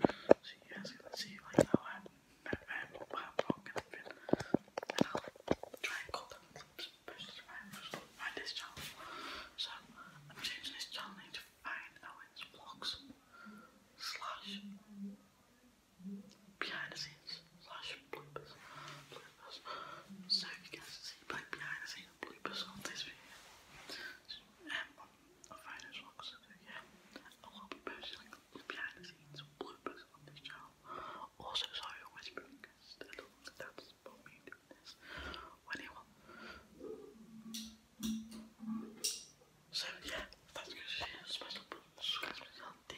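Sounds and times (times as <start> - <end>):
boy whispering: 0.0 - 37.7, 38.6 - 42.9.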